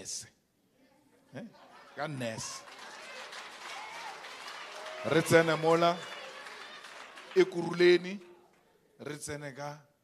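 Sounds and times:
audience clapping: 1.7 - 8.7.

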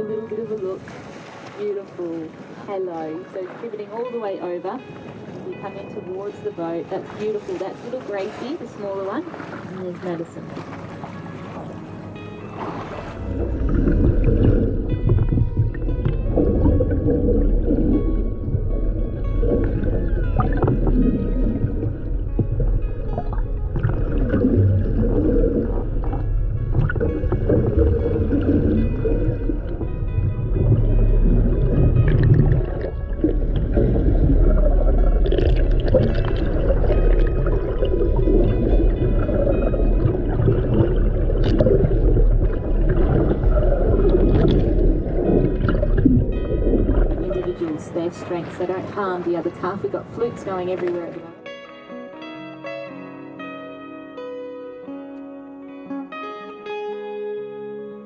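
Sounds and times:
background music with held tones: 1.6 - 58.0.

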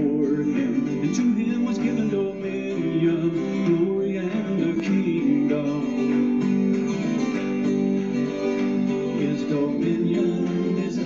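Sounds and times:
strummed acoustic guitars: 0.0 - 11.0.

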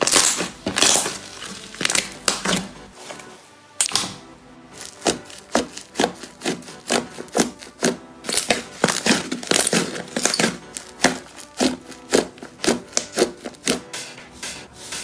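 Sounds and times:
slime clicking and popping: 0.0 - 1.2, 3.8 - 4.2.

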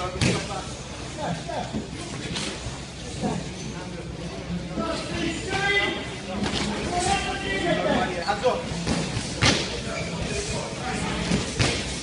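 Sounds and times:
voices in a large room: 0.0 - 12.0.

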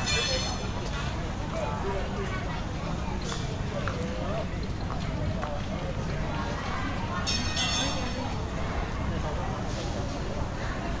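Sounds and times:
faint voices of passers-by: 0.0 - 11.0
low rumble of city noise: 0.0 - 11.0.

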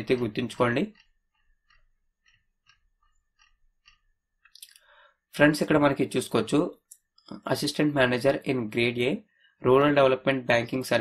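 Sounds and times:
mouse scroll-wheel clicks: 0.1 - 4.6
short breath: 4.7 - 5.2.

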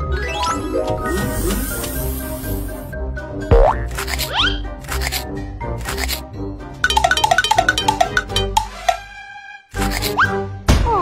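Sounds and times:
children's background music: 0.0 - 11.0.

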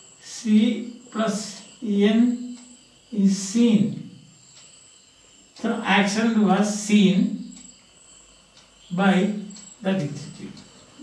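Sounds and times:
man speaking: 0.2 - 2.5, 3.1 - 4.1, 5.6 - 7.5, 8.9 - 10.6.

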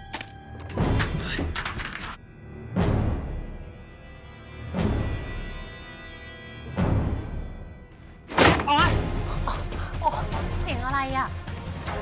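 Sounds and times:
dramatic background music: 0.0 - 12.0.

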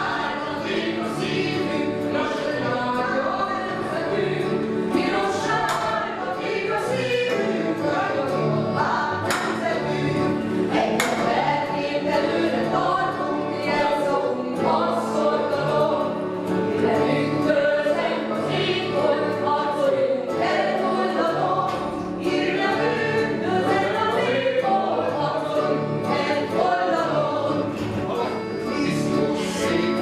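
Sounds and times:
choir singing held notes: 0.0 - 30.0
low musical accompaniment: 0.0 - 30.0.

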